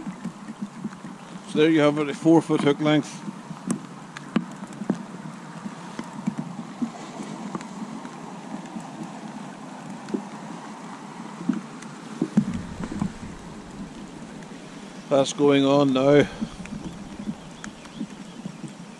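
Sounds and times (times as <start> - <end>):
drops ticking close by: 12.4 - 15.2, 15.9 - 18.9
heavy rain falling: 12.4 - 18.9
low rumble: 12.4 - 18.9.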